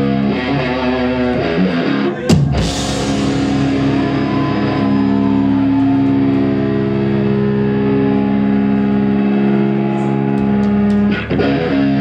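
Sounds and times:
distorted electric guitars chord: 0:00.0 - 0:09.8
cymbal crash: 0:02.6 - 0:04.2.

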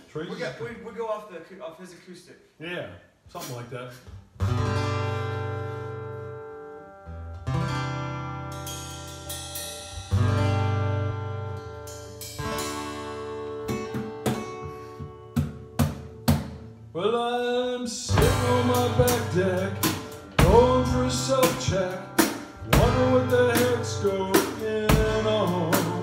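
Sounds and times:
acoustic guitars strumming chords: 0:04.4 - 0:26.0
drum kit hits: 0:13.6 - 0:16.7, 0:18.1 - 0:26.0.

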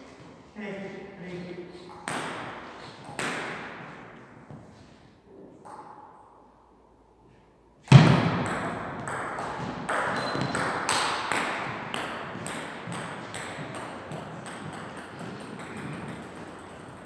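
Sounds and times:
ping pong ball hits: 0:01.9 - 0:03.7, 0:07.9 - 0:17.0
loud thud: 0:07.9 - 0:08.5.

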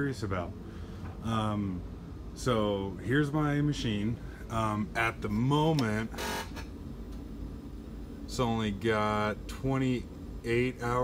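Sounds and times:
low steady machine hum: 0:00.0 - 0:11.0
buzzer-like tone: 0:06.1 - 0:06.7.

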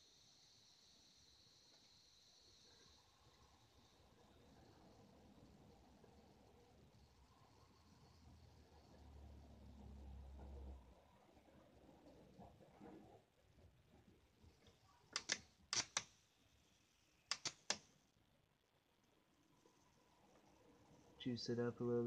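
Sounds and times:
faint low hum: 0:00.0 - 0:22.0
sharp electric spark snaps: 0:15.1 - 0:16.2, 0:17.3 - 0:17.9.

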